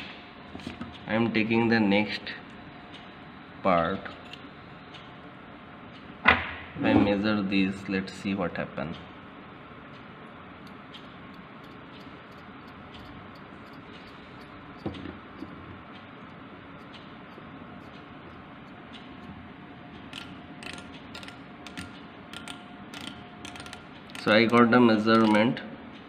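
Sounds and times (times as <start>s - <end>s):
micrometer ratchet clicking: 10.6s - 25.5s.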